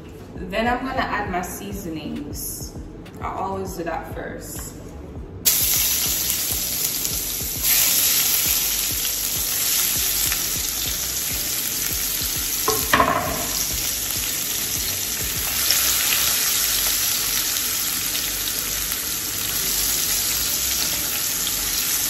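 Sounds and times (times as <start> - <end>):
food sizzling in a frying pan: 5.4 - 22.0.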